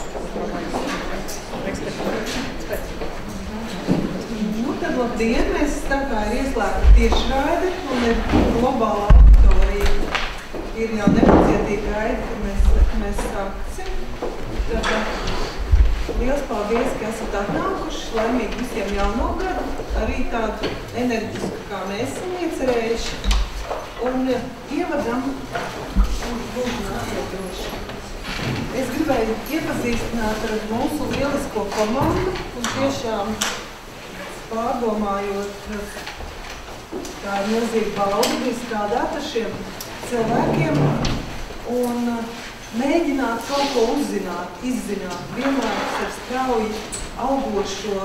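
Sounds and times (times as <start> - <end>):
woman speaking: 0.0 - 36.2, 37.2 - 48.0
speech: 0.2 - 10.1, 10.8 - 15.5, 16.1 - 23.2, 24.0 - 27.9, 28.6 - 33.6, 34.2 - 36.1, 37.2 - 48.0
low thumps: 6.6 - 10.0.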